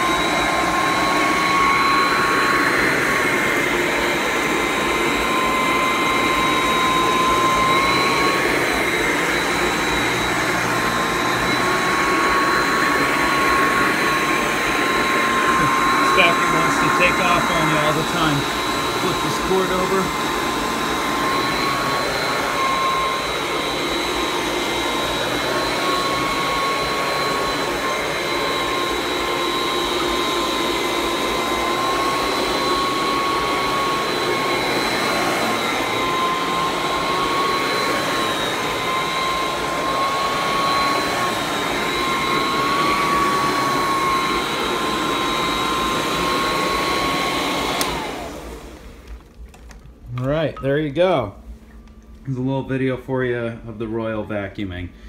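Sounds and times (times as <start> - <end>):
vacuum cleaner motor whine: 0.0 - 55.0.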